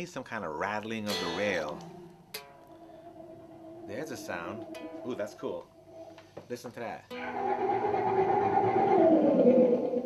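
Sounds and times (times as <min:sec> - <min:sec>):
synthesizer tone sliding down: 0:01.3 - 0:06.2, 0:07.2 - 0:10.0.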